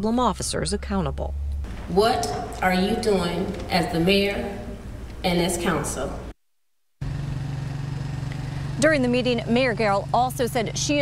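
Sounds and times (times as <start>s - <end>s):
low mechanical hum: 0.0s - 6.3s, 7.0s - 11.0s
woman's voice: 1.9s - 6.3s, 8.8s - 11.0s.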